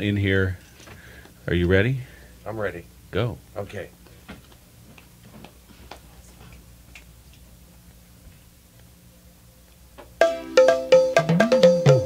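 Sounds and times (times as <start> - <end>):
steady low hum: 0.0 - 10.6.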